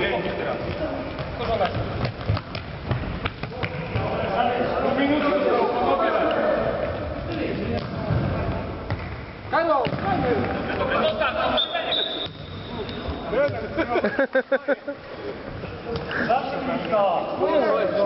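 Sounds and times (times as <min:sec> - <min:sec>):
ball kicks and bounces in hall: 0:00.5 - 0:04.3, 0:06.8 - 0:10.6, 0:12.2 - 0:13.8.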